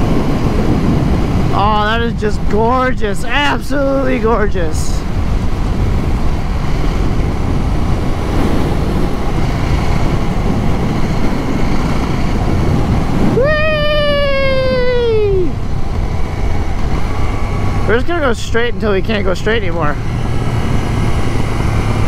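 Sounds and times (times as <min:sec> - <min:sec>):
motorcycle road noise: 0:00.0 - 0:22.0
wind rushing over microphone: 0:00.0 - 0:22.0.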